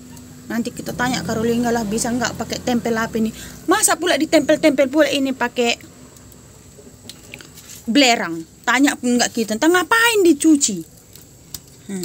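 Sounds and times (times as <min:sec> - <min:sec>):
woman speaking: 0:00.5 - 0:05.8, 0:07.9 - 0:10.9.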